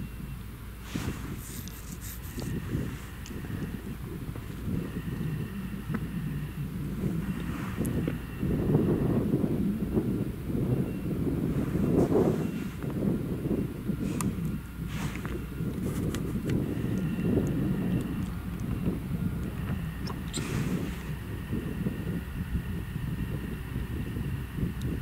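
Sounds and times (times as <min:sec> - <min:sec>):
harvester engine and machinery rumble: 0:00.0 - 0:25.0
wind on microphone: 0:00.0 - 0:25.0.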